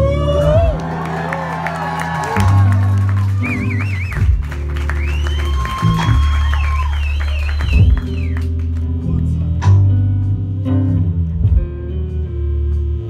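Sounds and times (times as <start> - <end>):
electric bass low notes: 0.0 - 13.0.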